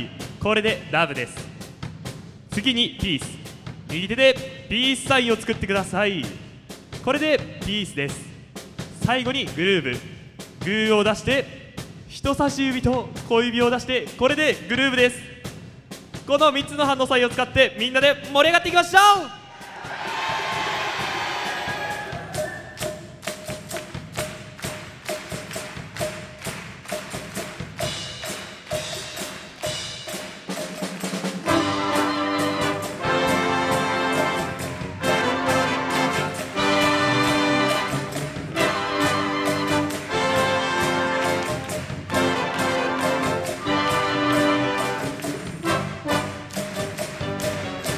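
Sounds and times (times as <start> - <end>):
drums groove: 0.0 - 47.9
wind band playing: 30.9 - 47.9
brass and woodwinds chords: 31.4 - 47.4.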